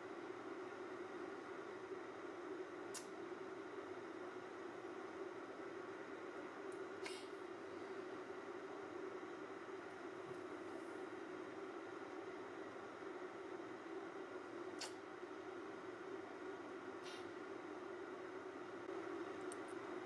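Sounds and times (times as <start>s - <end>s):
faint low hum: 0.0s - 20.0s
light hiss: 7.0s - 7.4s, 14.7s - 15.0s, 17.0s - 17.4s.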